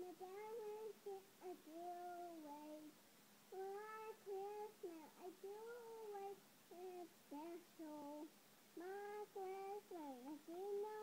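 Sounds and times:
girl singing held notes: 0.0 - 11.0.

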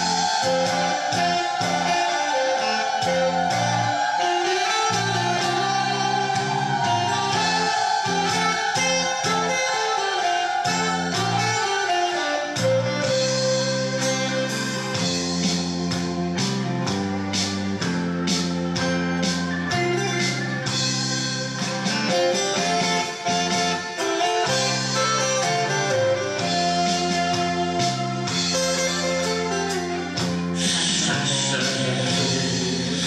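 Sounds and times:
instrumental band music: 0.0 - 33.0.

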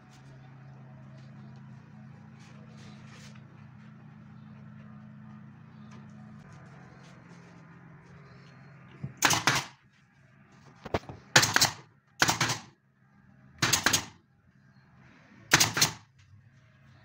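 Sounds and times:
pneumatic nail gun firing: 9.2 - 9.8, 11.3 - 12.7, 13.6 - 14.2, 15.5 - 16.1.

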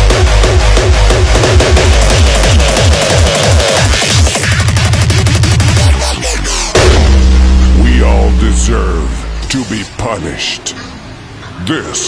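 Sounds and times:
hardcore electronic music: 0.0 - 10.0.

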